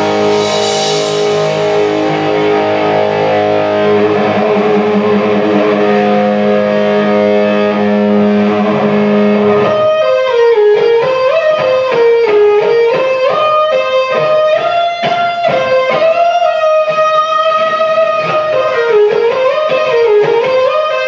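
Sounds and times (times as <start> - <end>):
heavy metal band: 0.0 - 12.0
electric guitar lead: 0.0 - 21.0.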